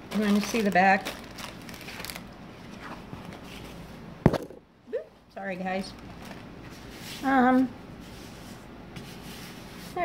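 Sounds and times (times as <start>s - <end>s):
plastic film rustling: 0.0s - 3.8s, 5.6s - 8.4s.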